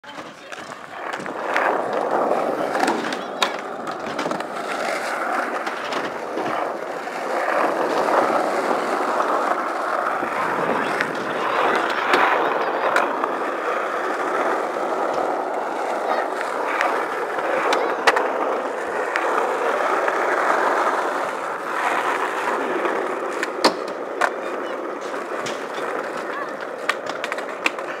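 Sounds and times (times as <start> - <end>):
skateboard clacks: 0.0 - 28.0
skateboard wheels rolling on asphalt: 0.0 - 28.0
skateboard scraping on edges: 0.1 - 28.0.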